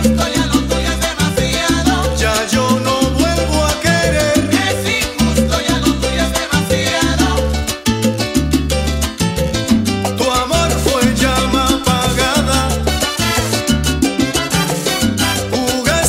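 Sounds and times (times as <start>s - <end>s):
salsa band playing: 0.0s - 16.0s.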